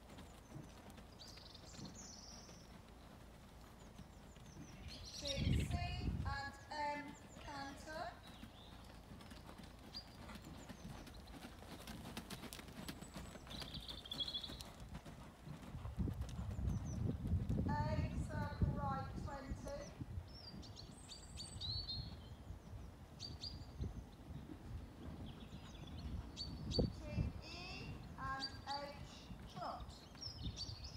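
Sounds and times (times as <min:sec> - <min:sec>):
horse hoofbeats on soft surface: 0:00.0 - 0:19.9.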